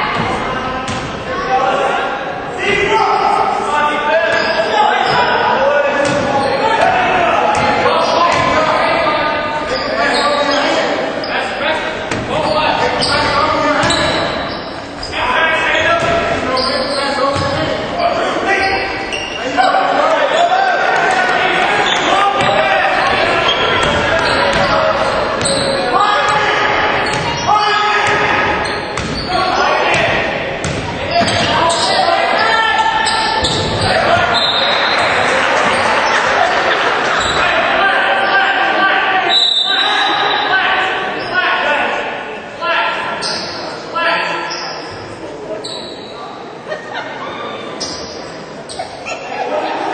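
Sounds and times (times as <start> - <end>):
many overlapping voices: 0.0 - 49.9
basketball bouncing on court: 7.5 - 8.6, 23.5 - 24.8, 27.0 - 29.3, 29.9 - 31.7.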